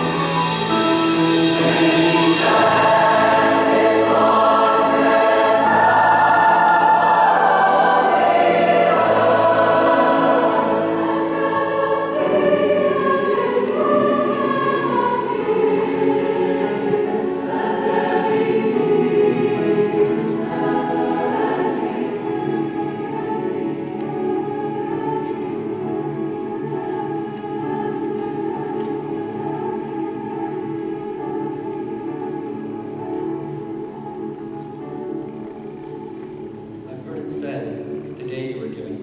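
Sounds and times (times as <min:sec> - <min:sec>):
mixed choir singing: 0:00.0 - 0:37.0
cello: 0:00.0 - 0:39.0
piano: 0:00.0 - 0:39.0.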